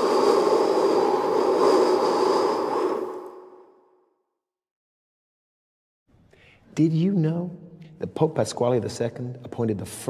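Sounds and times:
rushing whoosh effect: 0.0s - 3.9s.

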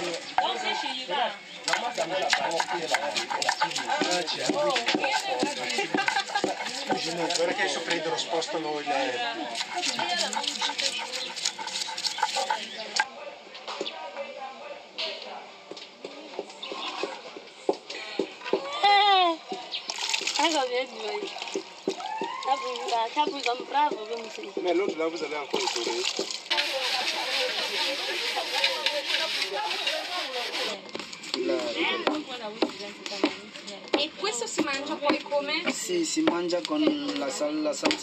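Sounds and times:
people talking: 0.0s - 15.4s, 17.9s - 19.6s, 20.4s - 21.3s, 22.3s - 38.0s
wooden pestle thudding in bowl: 1.7s - 7.2s
loud shouted call: 22.0s - 22.9s.

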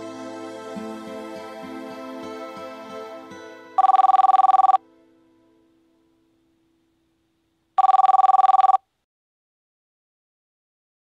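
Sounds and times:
telephone ringing: 3.8s - 4.8s, 7.8s - 8.9s.

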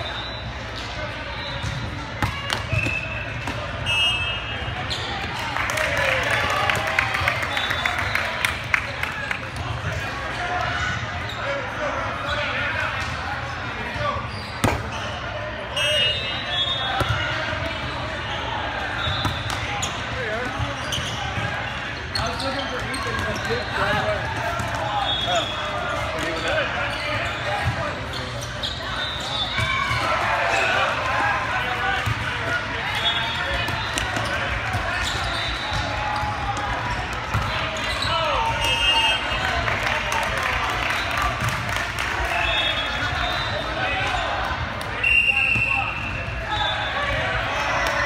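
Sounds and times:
volleyball slaps: 1.7s - 3.7s, 14.6s - 14.9s.

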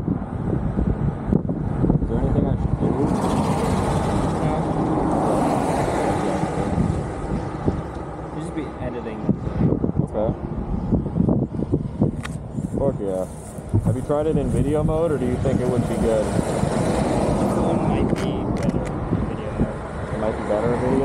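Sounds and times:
wind rumble on microphone: 0.0s - 21.0s
road vehicle passing by: 0.6s - 21.0s.

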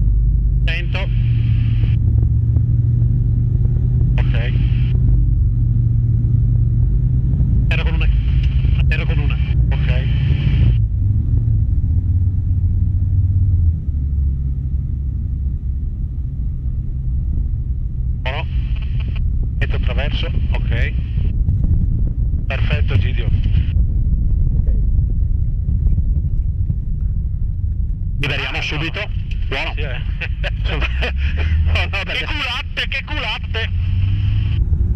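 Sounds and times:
airflow noise: 0.0s - 14.3s, 15.8s - 34.9s
light aircraft engine and propeller drone: 0.0s - 34.9s.

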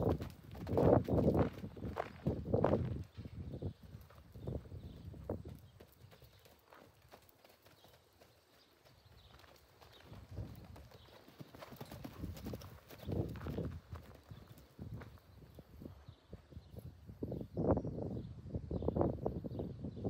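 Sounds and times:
hoofbeats on dirt: 0.0s - 16.8s.

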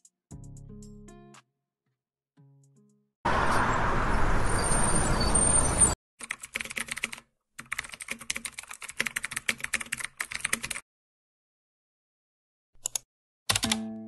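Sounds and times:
bus engine rumble: 3.3s - 6.0s
keyboard typing clicks: 12.8s - 13.8s.

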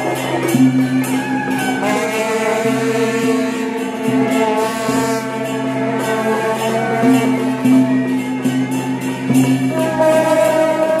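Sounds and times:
brass horns droning: 1.6s - 11.0s.

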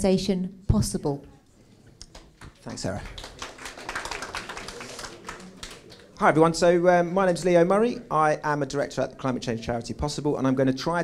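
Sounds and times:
audience clapping: 2.0s - 6.7s.

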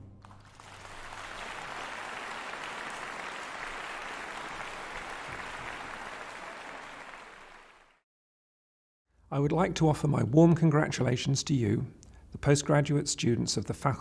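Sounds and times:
audience applauding: 0.2s - 8.0s.

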